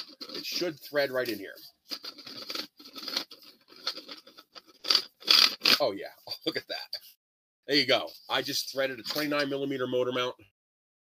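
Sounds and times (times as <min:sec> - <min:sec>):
plastic threads scraping: 0:00.0 - 0:06.5.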